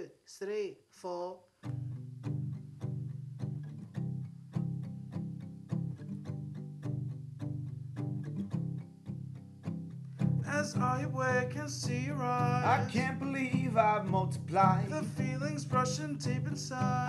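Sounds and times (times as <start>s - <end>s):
plucked string notes: 1.7s - 17.0s.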